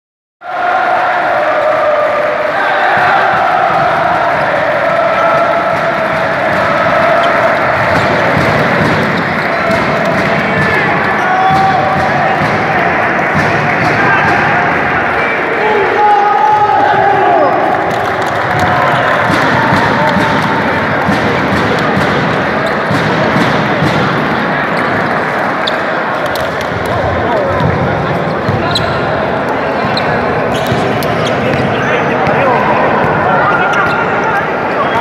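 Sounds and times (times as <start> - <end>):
players chanting and shouting: 0.4 - 35.0
sharp claps: 5.2 - 15.2, 17.6 - 25.6.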